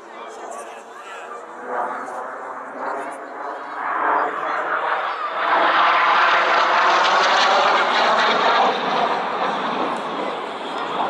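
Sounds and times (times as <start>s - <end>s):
jet flying past: 1.5s - 11.0s.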